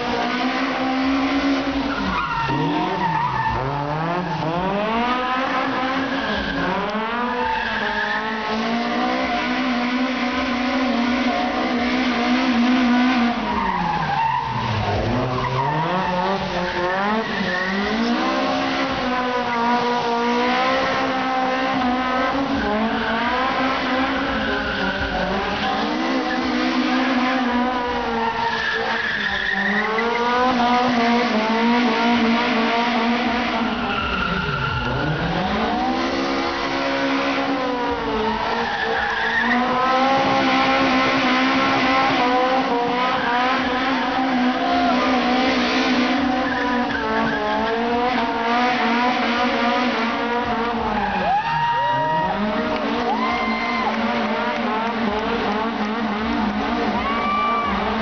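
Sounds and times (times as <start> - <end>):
car engine revving hard: 0.0 - 51.4, 52.0 - 58.0
tyres squealing and skidding: 0.0 - 58.0.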